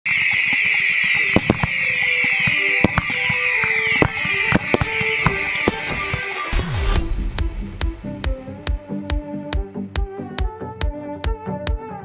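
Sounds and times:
high hiss falling in pitch: 0:00.1 - 0:06.6
firework bangs: 0:00.1 - 0:07.0
music: 0:00.1 - 0:12.0.

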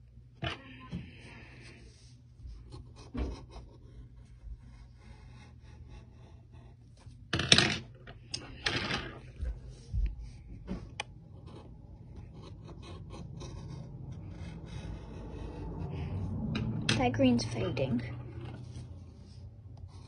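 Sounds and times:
pencil scratching on paper: 0:01.5 - 0:07.2, 0:11.3 - 0:16.5, 0:17.2 - 0:20.0.

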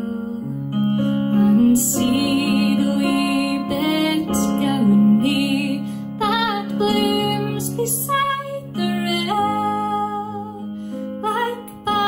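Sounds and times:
woman singing a folk ballad: 0:00.0 - 0:12.0.

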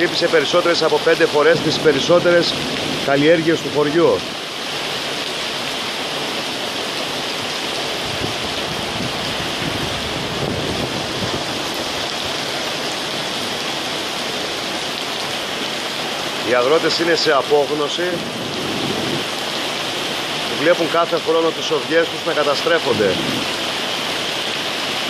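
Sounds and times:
heavy rain on pavement: 0:00.0 - 0:25.0.

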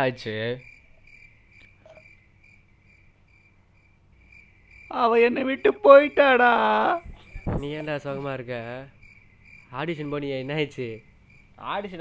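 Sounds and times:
cricket chirping: 0:00.0 - 0:12.0
man speaking: 0:04.9 - 0:09.0, 0:09.7 - 0:11.0, 0:11.6 - 0:12.0.

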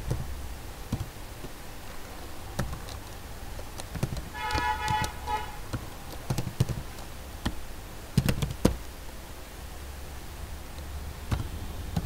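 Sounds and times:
computer keyboard keystrokes: 0:02.6 - 0:07.6, 0:08.2 - 0:08.8
horn-like tone: 0:04.4 - 0:05.6.

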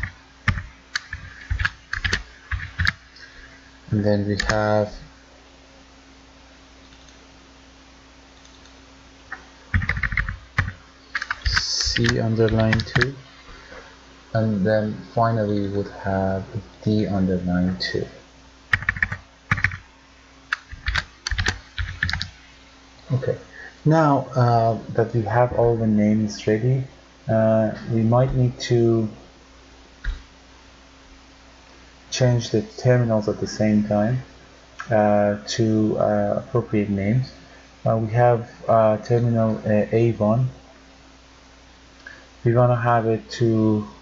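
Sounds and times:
computer keyboard typing: 0:00.0 - 0:03.0, 0:04.4 - 0:04.6, 0:09.7 - 0:13.1, 0:18.7 - 0:19.8, 0:20.5 - 0:22.3.

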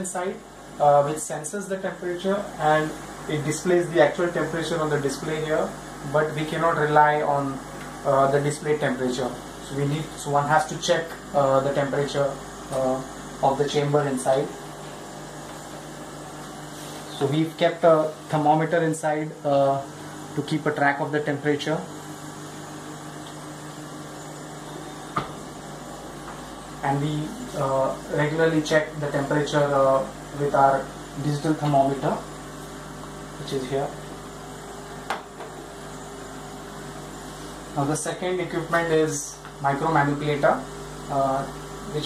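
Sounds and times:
machine hum with hiss: 0:00.0 - 0:42.0.

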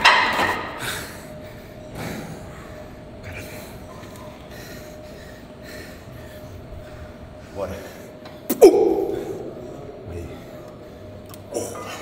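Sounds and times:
gym weights clanking down: 0:00.0 - 0:00.8.

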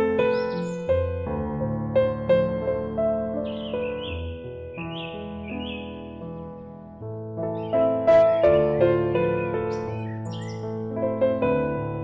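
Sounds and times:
soft piano notes: 0:00.0 - 0:12.0.

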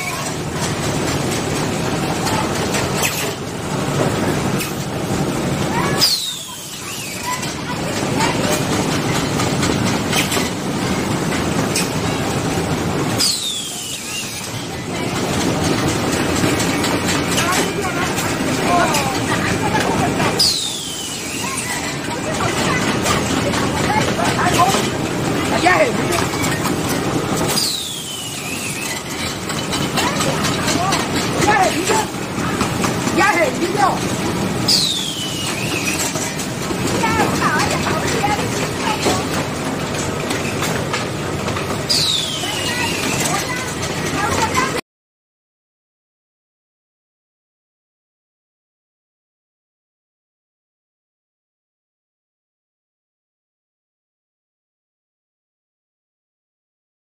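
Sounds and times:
machine clattering: 0:00.0 - 0:44.8.

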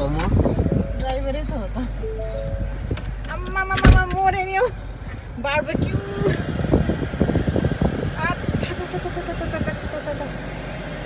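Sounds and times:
air-conditioning fan blowing: 0:00.0 - 0:11.0
car engine idling: 0:00.0 - 0:11.0.

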